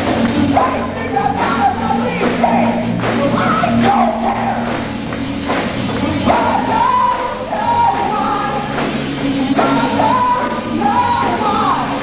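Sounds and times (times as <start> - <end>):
drum kit: 0.0 - 12.0
electric bass: 0.0 - 12.0
electric guitar: 0.0 - 12.0.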